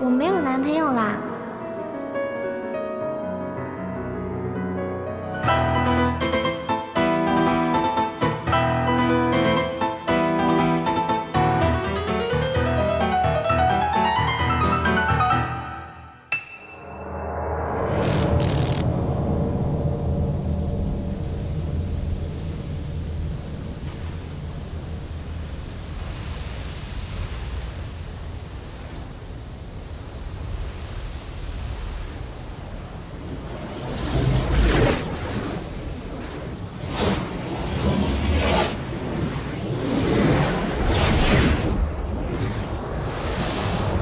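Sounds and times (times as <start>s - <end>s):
low rumble: 17.4s - 44.0s
steady rushing noise: 18.0s - 44.0s.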